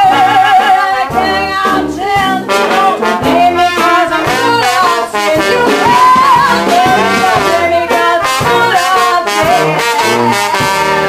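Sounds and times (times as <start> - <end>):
jazz band playing: 0.0 - 11.0
trombone: 0.0 - 11.0
trumpet: 0.0 - 11.0.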